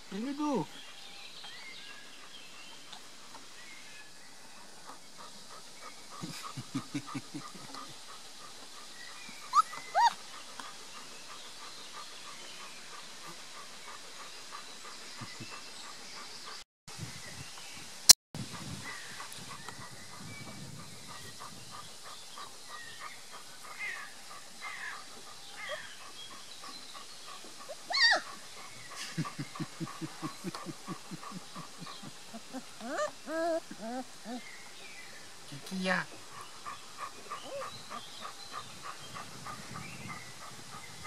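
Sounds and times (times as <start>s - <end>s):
puppies whimpering: 9.4s - 10.2s, 29.2s - 34.5s.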